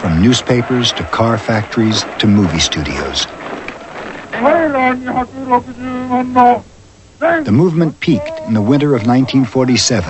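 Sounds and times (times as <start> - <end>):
person chanting: 4.3 - 6.6, 8.1 - 9.8.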